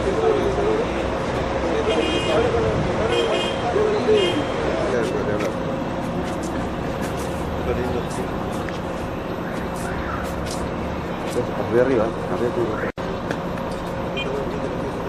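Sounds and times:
indistinct voices: 0:00.0 - 0:15.0
street traffic noise: 0:00.0 - 0:15.0.

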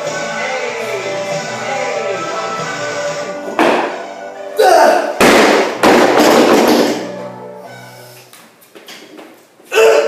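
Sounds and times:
music: 0:00.0 - 0:08.3
person yelling: 0:04.6 - 0:05.2
barbell crashing onto floor: 0:05.2 - 0:07.0.

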